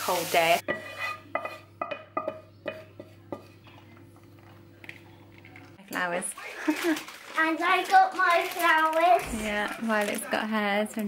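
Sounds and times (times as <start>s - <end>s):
spatula clinking on saucepan: 0.6s - 3.5s.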